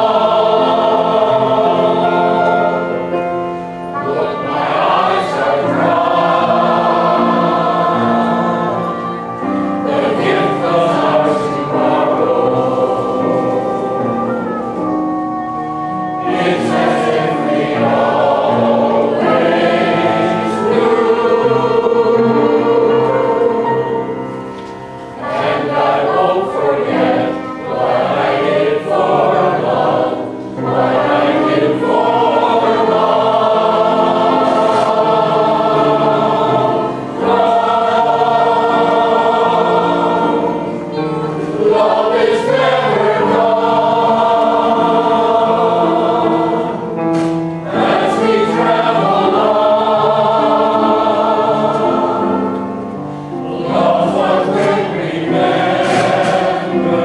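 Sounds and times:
mixed chorus singing: 0.0 - 57.0.

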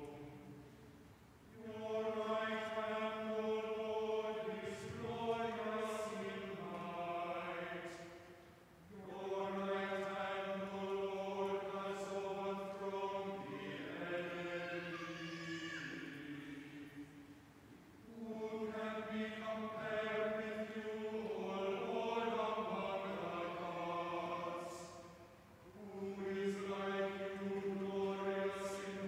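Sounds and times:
church choir chanting: 0.0 - 0.8, 1.5 - 17.4, 18.0 - 29.0.

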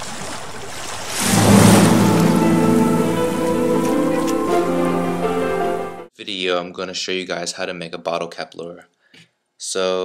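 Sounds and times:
rushing swell: 1.2 - 6.0
synthesized chord: 1.2 - 6.1.

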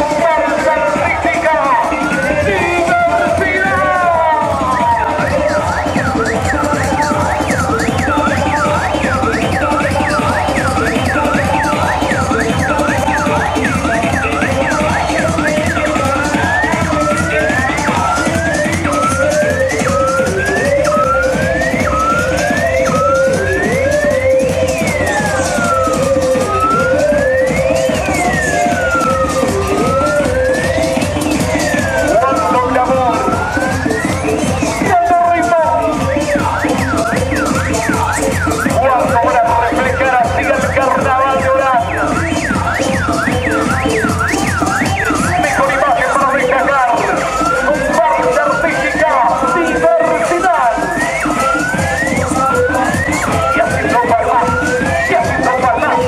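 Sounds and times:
carnival parade music: 0.0 - 56.0
siren yelping and wailing: 0.0 - 56.0.

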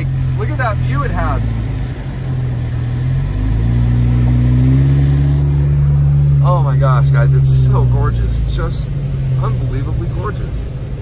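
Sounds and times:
car engine from inside cabin: 0.0 - 11.0
tyres on wet road: 0.0 - 11.0.

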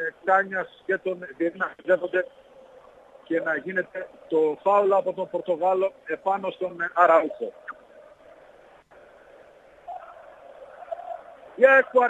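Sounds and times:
faint stadium crowd noise: 0.0 - 12.0.

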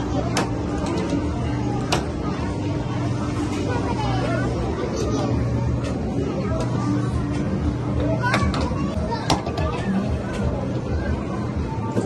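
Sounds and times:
arcade background noise: 0.0 - 12.0
children's voices and chatter: 0.0 - 12.0.

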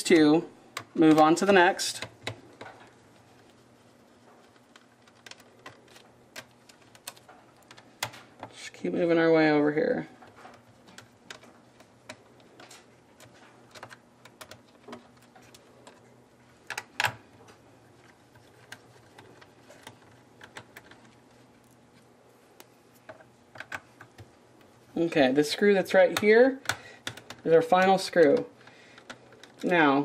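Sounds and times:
hands handling plastic parts: 0.1 - 8.6, 10.2 - 24.8, 26.1 - 29.9.

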